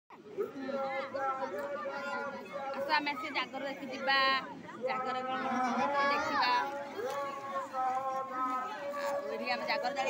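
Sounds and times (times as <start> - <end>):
background voices chattering: 0.1 - 10.0.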